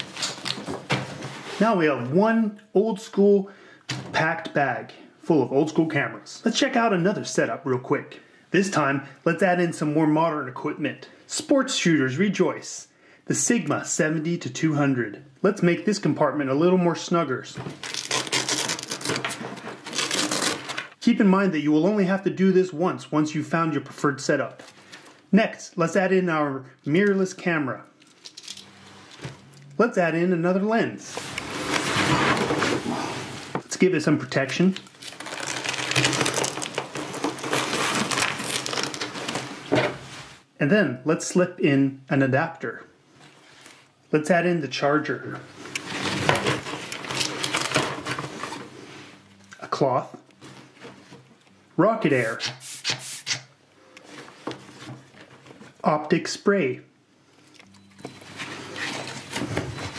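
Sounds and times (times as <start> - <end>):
hook-and-loop fastening tearing: 17.8 - 20.9, 34.8 - 39.4.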